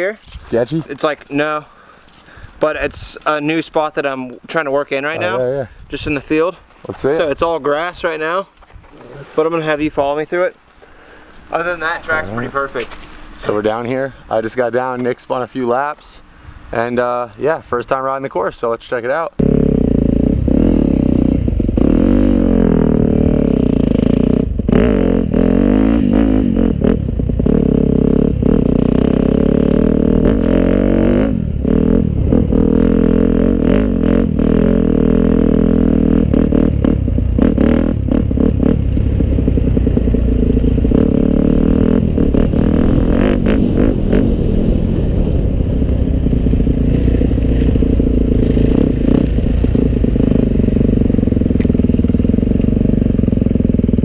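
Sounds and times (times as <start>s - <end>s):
dirt bike engine revving: 19.4s - 54.0s.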